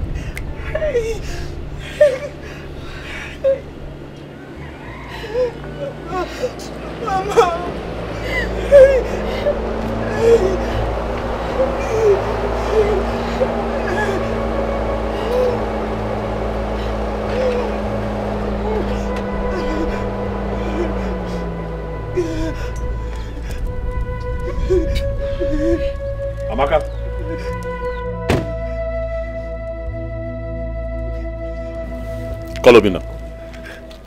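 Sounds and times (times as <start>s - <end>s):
steady low hum: 0.0s - 34.0s
person crying: 0.6s - 3.7s, 5.2s - 16.3s, 16.9s - 23.5s, 24.4s - 26.0s.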